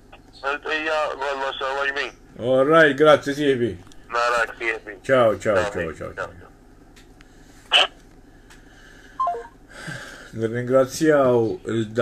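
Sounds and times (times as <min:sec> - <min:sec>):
falling electronic beeps: 0:09.2 - 0:09.6.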